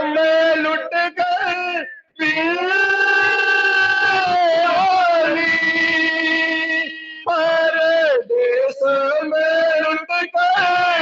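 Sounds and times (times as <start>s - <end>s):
man chanting mournfully: 0.0s - 11.0s.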